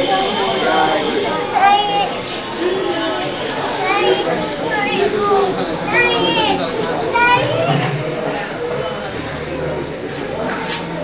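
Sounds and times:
children talking and calling out: 0.0s - 11.0s
people speaking: 0.0s - 11.0s.

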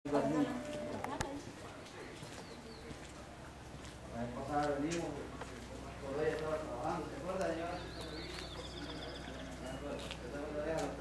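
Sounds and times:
indistinct voices talking: 0.1s - 4.4s, 5.1s - 11.0s
small bird trilling: 7.8s - 9.8s.

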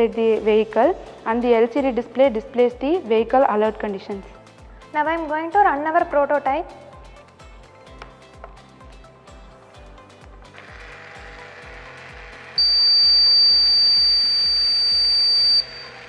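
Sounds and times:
music with steady beat: 3.7s - 15.6s
high-pitched warning buzzer: 12.6s - 16.0s.

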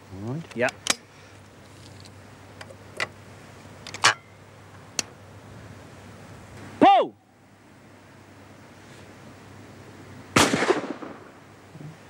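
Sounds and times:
shotgun shot with echo: 10.4s - 11.3s.

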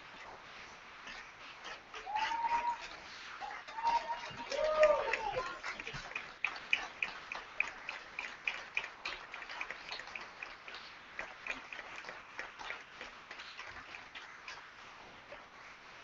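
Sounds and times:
audience clapping: 3.6s - 14.2s.

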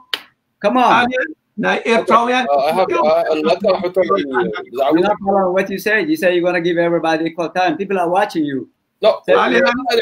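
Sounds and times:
men talking over video call: 0.6s - 10.0s.

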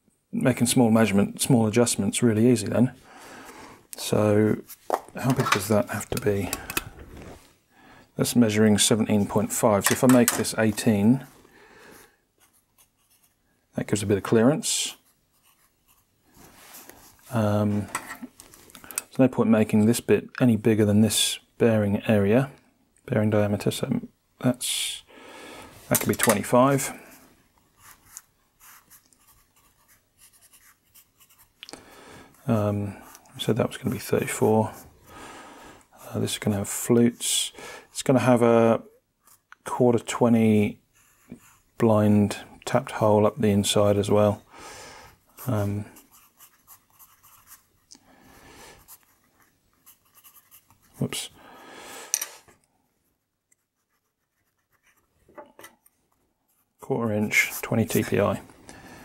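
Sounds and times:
pencil writing on paper: 15.0s - 16.1s, 27.8s - 31.6s, 46.0s - 47.9s, 48.8s - 51.0s, 53.5s - 55.1s.

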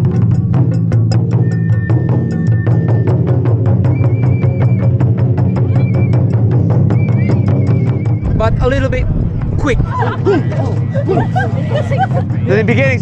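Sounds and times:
taiko drums playing: 0.0s - 12.3s.

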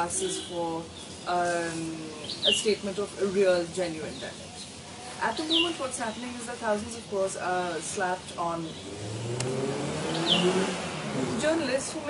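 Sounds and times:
road noise: 0.0s - 12.0s
vehicle engine passing: 8.8s - 12.0s.

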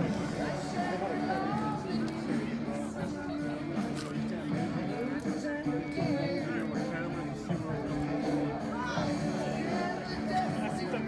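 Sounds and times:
music playing: 0.0s - 11.0s
people chattering: 0.0s - 11.0s.

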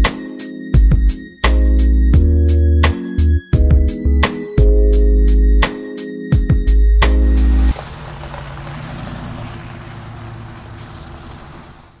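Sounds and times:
noisy rumble: 7.0s - 12.0s.

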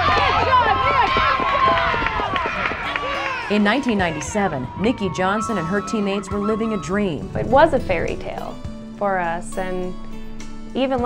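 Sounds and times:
women shouting and cheering: 0.0s - 7.8s.

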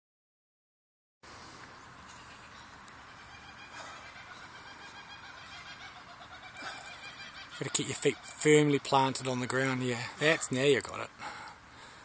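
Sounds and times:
faint outdoor background noise: 1.2s - 12.0s
breathy rush: 9.9s - 12.0s.

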